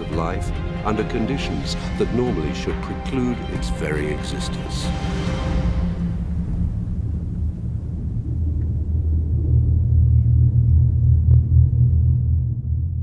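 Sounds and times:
deep low rumbling drone: 0.0 - 13.0.

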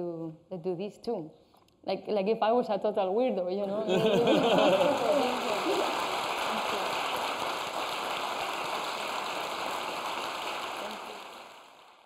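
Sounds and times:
audience applause: 3.9 - 12.0.

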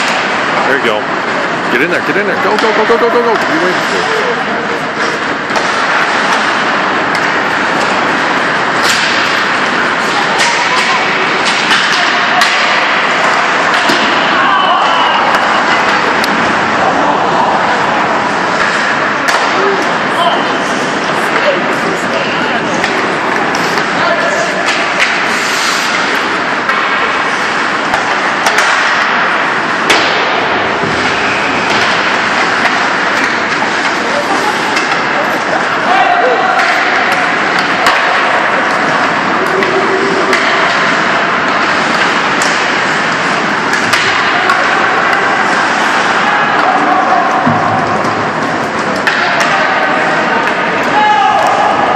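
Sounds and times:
hockey sticks and puck knocking: 0.0 - 1.3, 2.0 - 4.0, 5.0 - 20.2, 22.6 - 51.9
crowd voices and shouts: 0.0 - 51.9.

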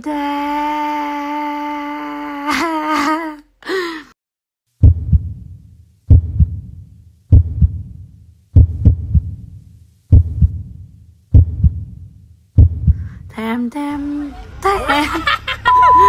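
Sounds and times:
heartbeat thumps: 4.8 - 13.2.

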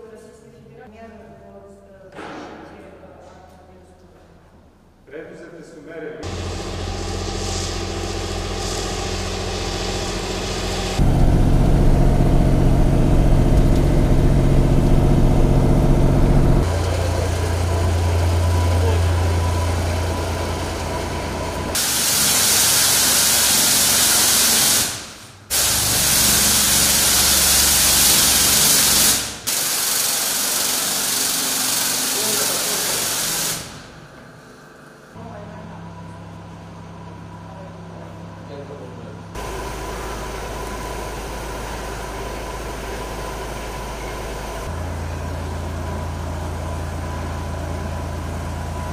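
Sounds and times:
vehicle engine humming: 6.2 - 21.8, 34.0 - 48.9
pressure spray gun hissing: 6.2 - 33.9, 39.4 - 44.7.

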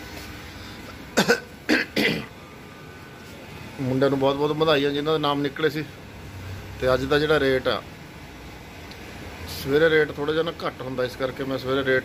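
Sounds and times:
man coughing: 1.2 - 2.4.

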